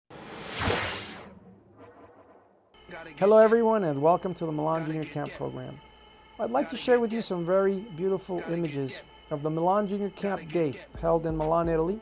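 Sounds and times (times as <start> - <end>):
whoosh sound effect: 0.1 - 2.6.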